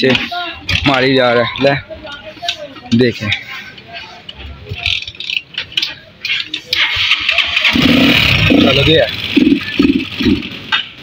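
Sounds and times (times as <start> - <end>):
voices: 0.0 - 11.0
motorcycle engine kick-started: 6.7 - 11.0.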